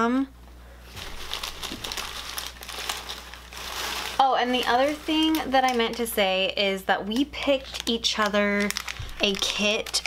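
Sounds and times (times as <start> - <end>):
packaging crinkling: 0.9 - 10.0.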